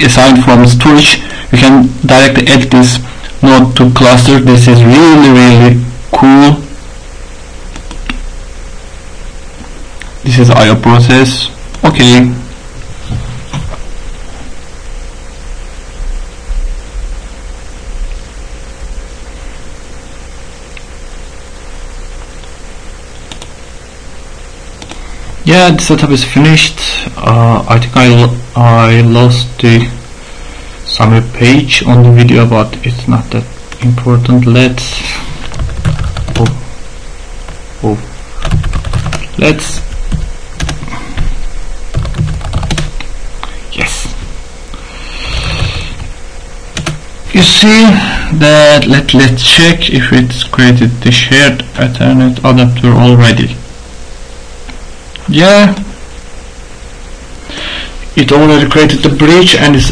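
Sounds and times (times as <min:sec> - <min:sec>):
background hiss: 0:00.0 - 0:59.9
low hum: 0:00.0 - 0:59.9
keyboard typing clicks: 0:07.7 - 0:08.2, 0:23.3 - 0:23.5, 0:24.8 - 0:25.0, 0:46.8 - 0:47.0.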